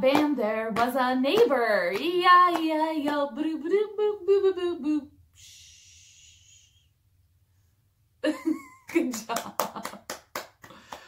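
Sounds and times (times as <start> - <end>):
woman's voice: 0.0 - 5.1.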